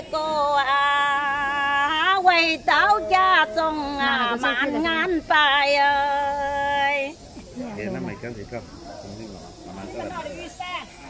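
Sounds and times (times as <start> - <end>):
people talking quietly: 0.0 - 11.0.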